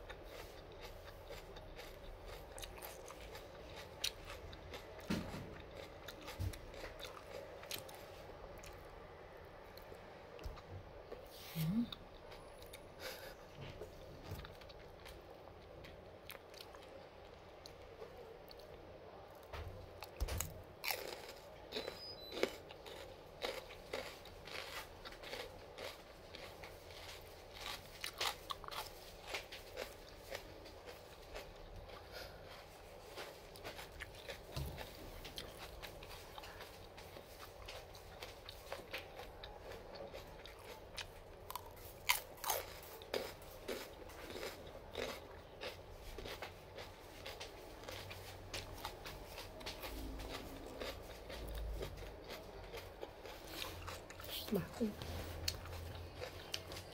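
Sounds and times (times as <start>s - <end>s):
crisp crunching of chewing: 0.0s - 8.9s, 11.0s - 56.9s.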